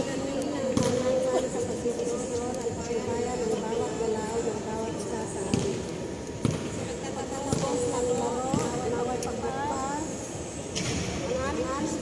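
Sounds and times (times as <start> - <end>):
murmur of voices: 0.0 - 12.0
basketball bouncing on court: 5.4 - 9.0.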